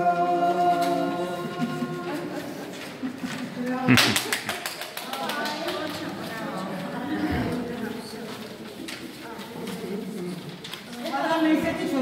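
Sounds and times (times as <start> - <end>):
murmur of voices: 0.0 - 12.0
paper rustling: 5.6 - 12.0.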